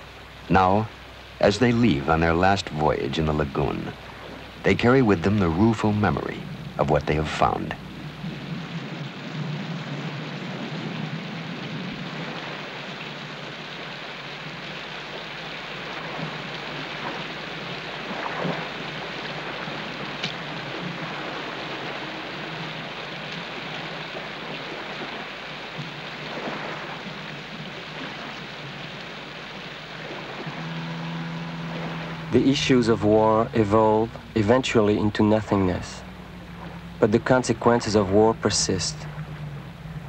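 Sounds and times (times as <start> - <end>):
outboard motor humming: 0.0 - 40.0
steady rain hiss: 0.0 - 40.0.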